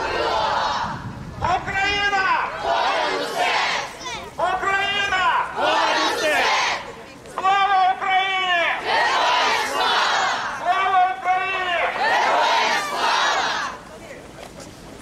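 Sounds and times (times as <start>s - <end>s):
crowd chanting slogan: 0.0s - 7.0s, 8.5s - 13.8s.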